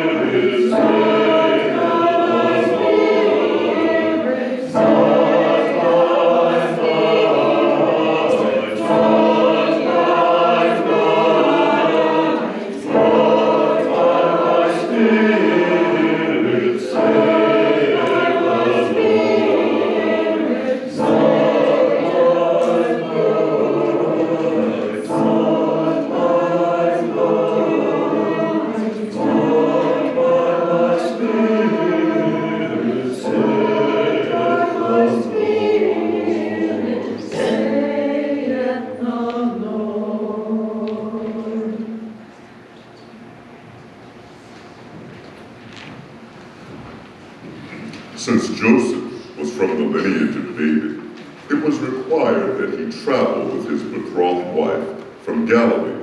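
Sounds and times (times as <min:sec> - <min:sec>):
choir singing: 0:00.0 - 0:43.6, 0:47.2 - 0:56.0.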